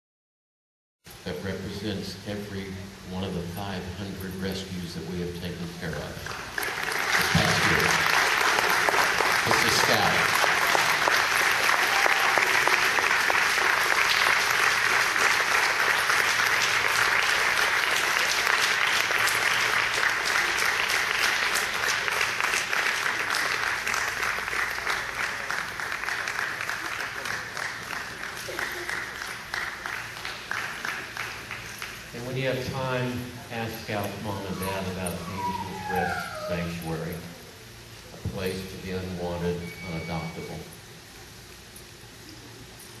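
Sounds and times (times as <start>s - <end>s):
audience applauding: 6.3s - 32.3s.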